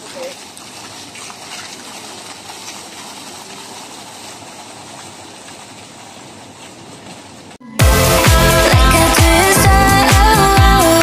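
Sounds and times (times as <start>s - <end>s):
fountain water splashing: 0.0s - 7.0s
loud music with steady beat: 7.8s - 11.0s.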